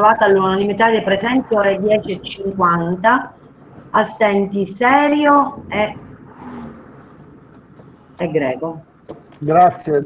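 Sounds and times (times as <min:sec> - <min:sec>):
faint background line noise: 0:00.0 - 0:10.0.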